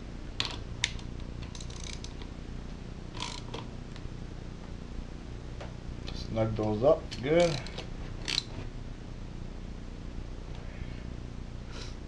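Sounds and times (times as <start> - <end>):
hand ratchet clicking: 0.4 - 2.2, 3.2 - 3.6, 7.1 - 8.5.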